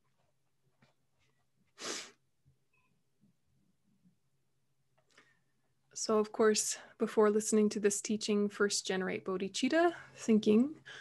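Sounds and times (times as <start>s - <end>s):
short sharp breath: 1.8s - 2.2s.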